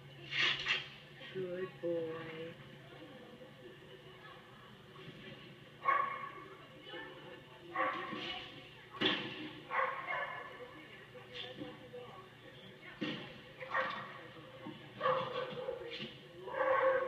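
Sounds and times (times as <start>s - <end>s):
dog barking through tv speaker: 5.8s - 6.4s, 7.7s - 8.2s, 9.7s - 10.6s, 13.6s - 14.2s, 15.0s - 15.9s, 16.5s - 17.0s.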